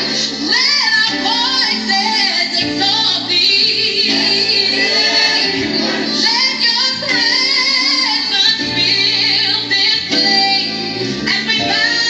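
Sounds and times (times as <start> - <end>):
gospel song over speakers: 0.0 - 12.0.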